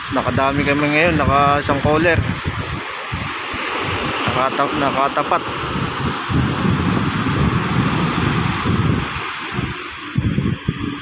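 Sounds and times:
sea noise: 0.0 - 11.0
wind buffeting microphone: 0.0 - 11.0.

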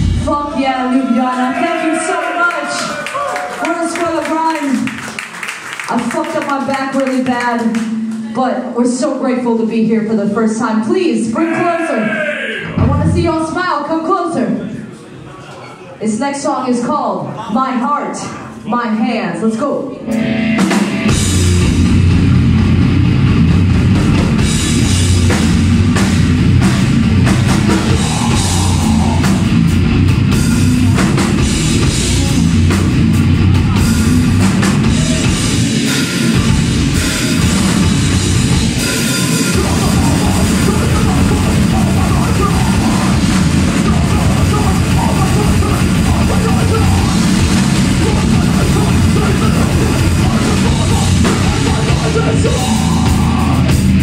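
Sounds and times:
fast drums: 0.0 - 8.0, 12.6 - 13.8, 20.6 - 54.0
shouted vocals: 0.3 - 4.7, 11.1 - 13.4, 27.6 - 29.7, 39.4 - 53.8
distorted bass and guitar: 20.0 - 54.0.

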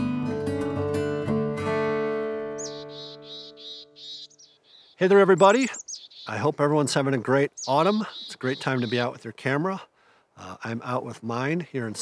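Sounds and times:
small bird chirping: 2.5 - 9.3.

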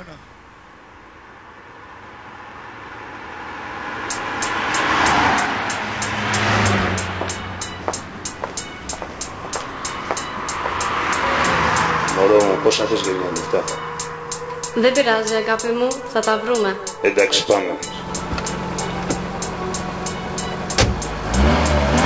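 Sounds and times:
rising rush of noise: 0.8 - 14.8
steady ticking: 4.1 - 22.0.

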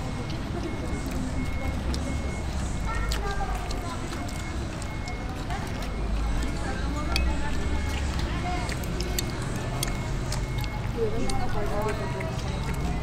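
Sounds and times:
indistinct voices: 0.0 - 13.0.

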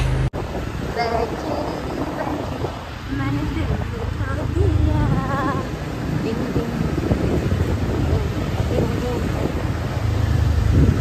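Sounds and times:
street traffic: 0.0 - 11.0
wind buffeting microphone: 0.0 - 11.0.

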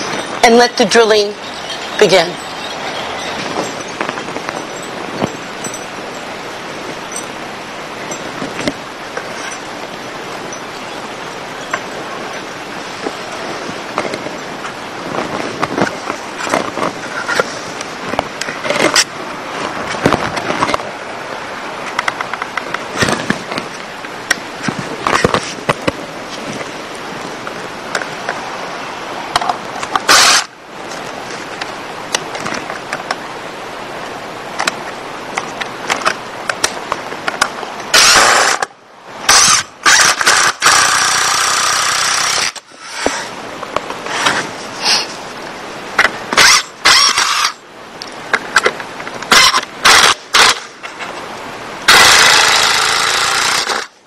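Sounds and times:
handling clicks and knocks: 1.4 - 6.3, 8.0 - 10.9, 11.6 - 13.2
cordless drill drilling into wood: 30.1 - 30.5, 38.0 - 38.7, 39.3 - 43.3, 46.4 - 47.6, 51.9 - 53.9.

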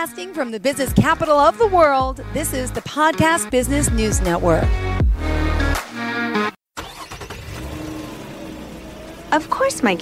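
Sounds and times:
radio music jingle: 0.0 - 5.7.

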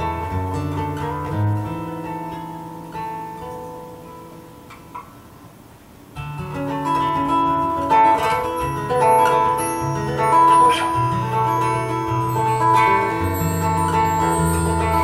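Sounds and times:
guitar chord ringing: 0.0 - 5.3, 6.2 - 15.0.

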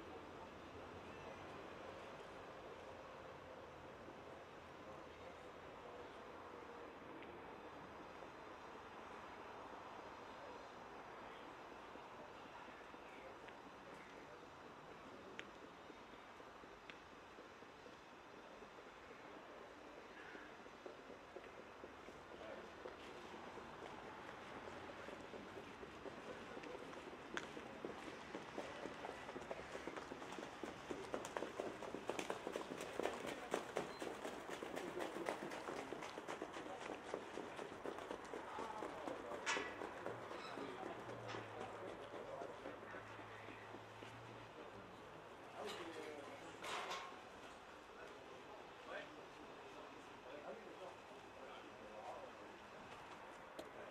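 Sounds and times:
faint voices: 0.0 - 53.9
hoofbeats of trotting horses on sand: 11.7 - 45.3.

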